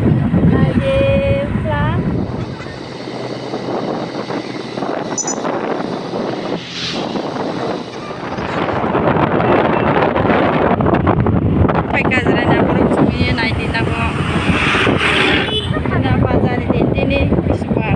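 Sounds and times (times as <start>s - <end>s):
motorbike road noise: 0.0s - 17.9s
wind rushing over microphone: 0.0s - 17.9s.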